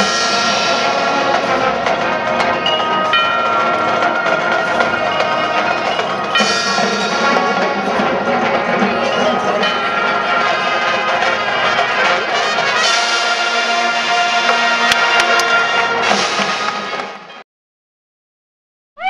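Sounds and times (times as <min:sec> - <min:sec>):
marching band brass music: 0:00.0 - 0:17.4.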